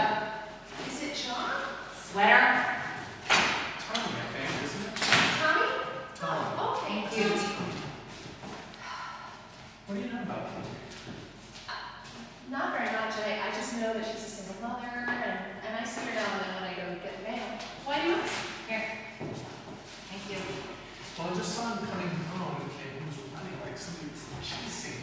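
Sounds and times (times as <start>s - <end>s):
voices talking: 3.9s - 7.8s.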